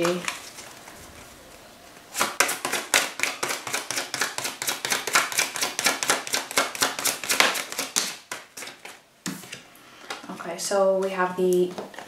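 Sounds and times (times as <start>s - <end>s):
cards being shuffled: 2.0s - 9.6s.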